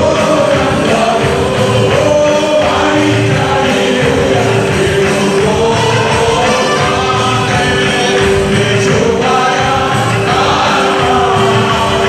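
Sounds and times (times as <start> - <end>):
congregation singing: 0.0 - 12.0
hand-clapping: 0.0 - 12.0
instrumental accompaniment: 0.0 - 12.0.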